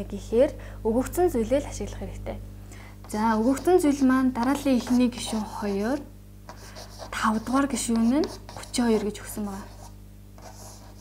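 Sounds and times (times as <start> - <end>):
woman speaking: 0.0 - 2.4, 3.1 - 6.1, 7.0 - 9.9
chalk scratching on a blackboard: 3.4 - 3.9, 4.7 - 5.7, 6.5 - 11.0.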